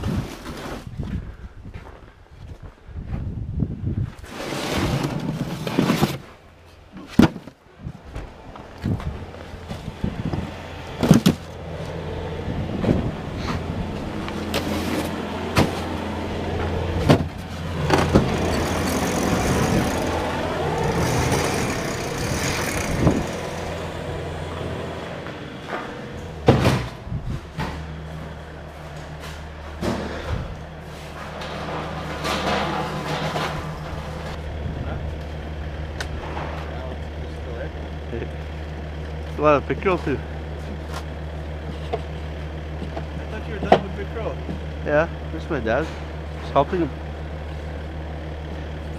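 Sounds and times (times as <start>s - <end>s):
plastic crates knocking and clattering: 6.9s - 7.6s, 17.0s - 19.5s
motor running steadily: 8.2s - 31.6s, 33.8s - 48.9s.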